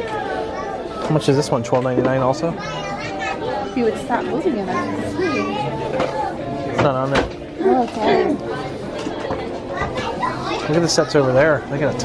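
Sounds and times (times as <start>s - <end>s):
people talking overlapping: 0.0s - 12.0s.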